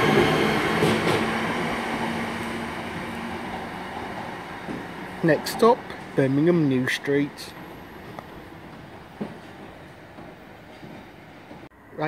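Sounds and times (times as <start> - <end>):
distant train running in tunnel: 0.0 - 12.0.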